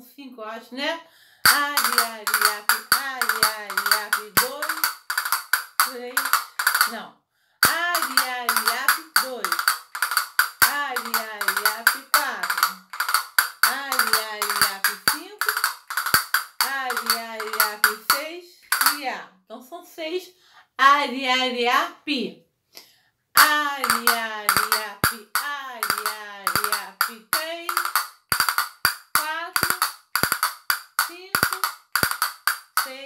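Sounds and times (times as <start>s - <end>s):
woman singing wordless flamenco line: 1.5s - 4.9s, 5.8s - 7.0s, 7.6s - 9.6s, 10.6s - 12.9s, 13.6s - 15.6s, 16.6s - 19.2s, 23.4s - 28.0s, 29.2s - 29.9s
castanets clicking: 1.5s - 7.0s, 7.6s - 19.0s, 23.4s - 33.0s.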